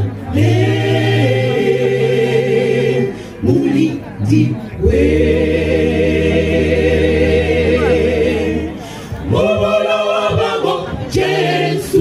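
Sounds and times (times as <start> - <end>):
mixed choir singing a cappella: 0.0 - 12.0.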